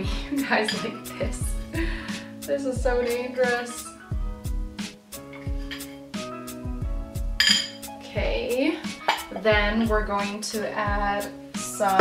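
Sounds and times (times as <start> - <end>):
background music with steady beat: 0.0 - 12.0
glass clinking against jar: 5.3 - 6.0, 7.4 - 7.8, 9.0 - 9.4.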